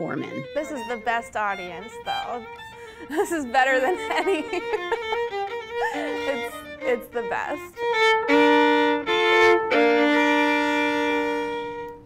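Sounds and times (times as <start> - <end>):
solo violin playing: 0.0 - 12.0.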